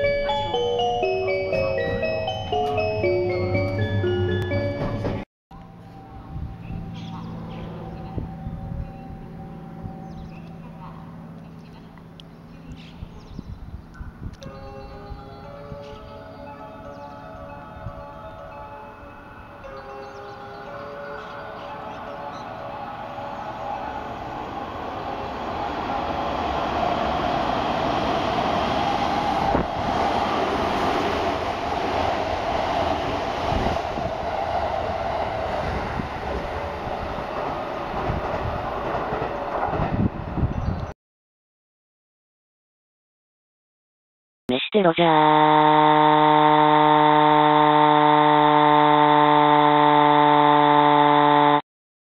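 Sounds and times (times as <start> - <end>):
station chime tune: 0.0 - 5.2, 5.8 - 7.3, 7.9 - 10.5, 14.4 - 24.1
train wheels rumbling on rail: 21.2 - 40.9.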